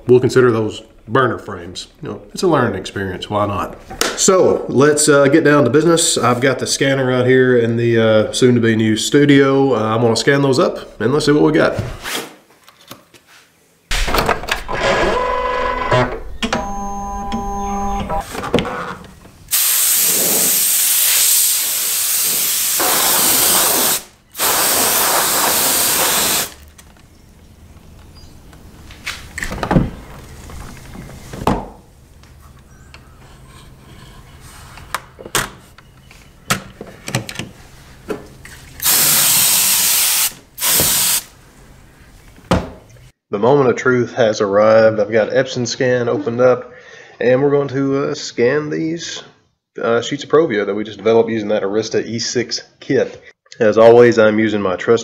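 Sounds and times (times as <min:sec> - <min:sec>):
steady electronic tones: 0:14.7 - 0:18.2
air spray hissing: 0:19.5 - 0:26.6, 0:38.8 - 0:41.3.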